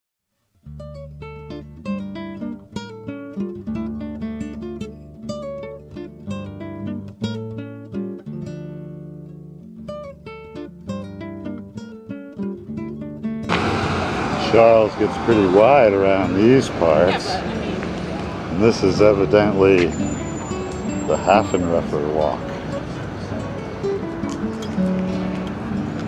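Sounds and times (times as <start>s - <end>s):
acoustic guitar: 0.5s - 26.0s
street traffic noise: 13.4s - 26.0s.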